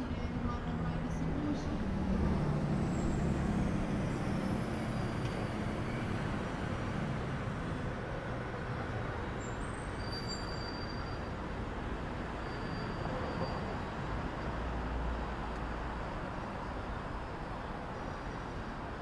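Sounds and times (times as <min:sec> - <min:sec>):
cars and truck driving past: 0:00.8 - 0:19.0
faint high-pitched squeal: 0:09.4 - 0:11.4.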